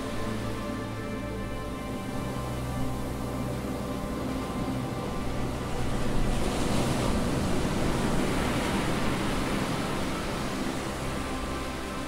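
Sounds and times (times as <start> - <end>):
ocean waves breaking: 0.0 - 12.0
soft background music: 0.0 - 12.0.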